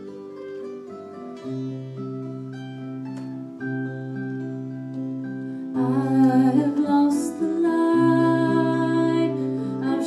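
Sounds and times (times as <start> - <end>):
acoustic held notes: 0.0 - 10.0.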